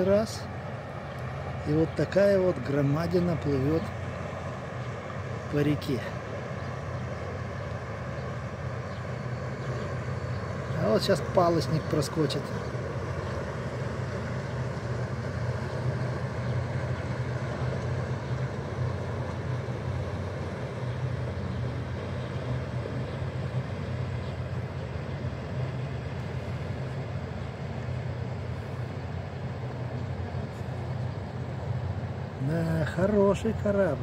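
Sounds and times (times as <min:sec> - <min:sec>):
ship engines droning: 0:00.0 - 0:34.0.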